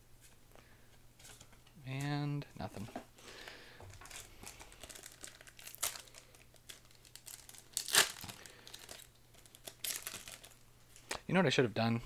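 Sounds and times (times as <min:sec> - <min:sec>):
foil wrapper crinkling and tearing: 0:03.9 - 0:10.6.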